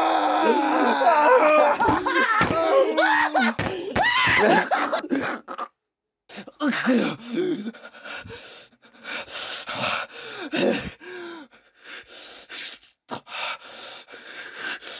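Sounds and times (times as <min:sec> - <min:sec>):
person laughing hard: 0:00.8 - 0:05.5.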